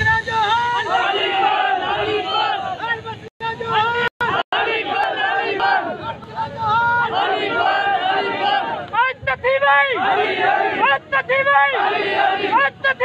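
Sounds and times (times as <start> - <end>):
crowd of men shouting slogans: 0.2 - 13.0.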